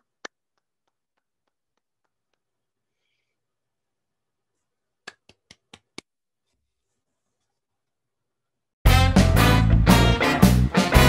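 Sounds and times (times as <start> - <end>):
hand claps over video call: 0.0 - 2.7, 5.0 - 6.1.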